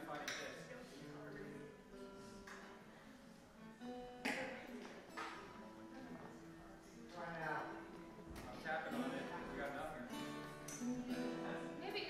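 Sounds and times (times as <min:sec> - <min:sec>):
acoustic guitar strumming: 0:03.6 - 0:06.5, 0:07.3 - 0:12.0.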